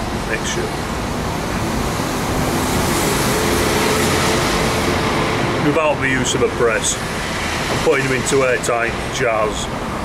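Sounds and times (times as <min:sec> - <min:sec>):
road traffic noise: 0:00.0 - 0:10.0
passing vehicle engine hum: 0:00.1 - 0:10.0.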